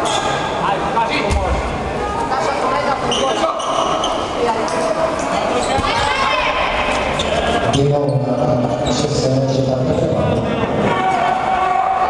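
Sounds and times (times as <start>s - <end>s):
players and spectators voices: 0.0s - 12.0s.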